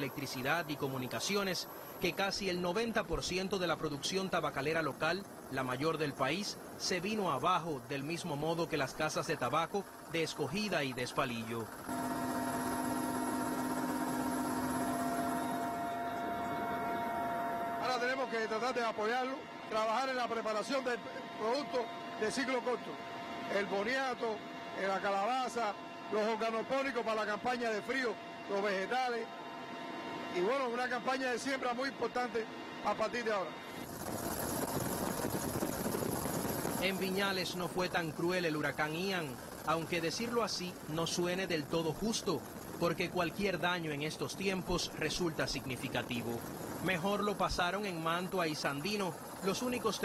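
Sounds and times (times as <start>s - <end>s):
helicopter cabin hum: 0.0s - 50.0s
thin high whine: 0.0s - 50.0s.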